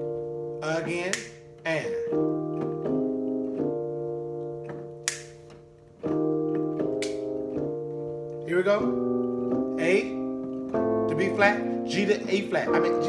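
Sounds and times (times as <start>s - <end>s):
electric keyboard piano chords: 0.0s - 13.0s.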